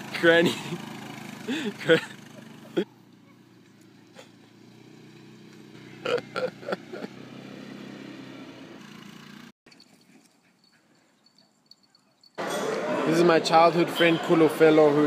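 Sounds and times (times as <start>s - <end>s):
quad bike engine running: 0.0s - 9.5s.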